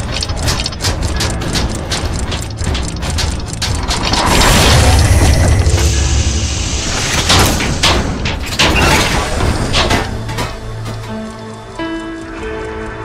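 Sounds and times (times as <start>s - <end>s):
metal gears ratcheting clicks: 0.0s - 6.4s
mechanical rush with deep rumble: 0.0s - 11.8s.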